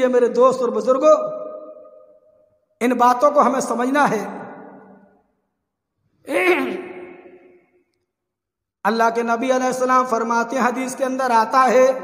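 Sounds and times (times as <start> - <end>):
man speaking: 0.0 - 1.4, 2.8 - 4.5, 6.2 - 7.3.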